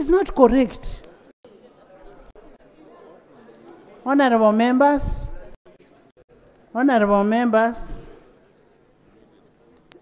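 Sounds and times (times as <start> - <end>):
faint voices talking: 0.6 - 6.8, 7.9 - 10.0.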